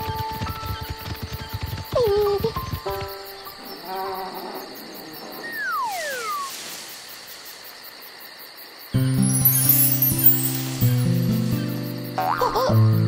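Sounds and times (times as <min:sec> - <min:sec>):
crickets chirping: 0:00.0 - 0:13.0
falling whistle-like glide: 0:05.4 - 0:07.3, 0:09.0 - 0:11.1.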